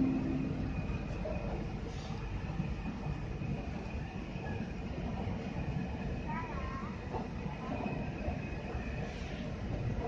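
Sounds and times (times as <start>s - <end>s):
electric train rumbling: 0.0s - 10.0s.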